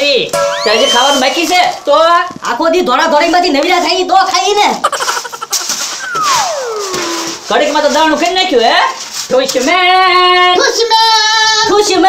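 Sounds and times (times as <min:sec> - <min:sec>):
falling whistle sound effect: 0:00.4 - 0:01.7, 0:05.8 - 0:07.5.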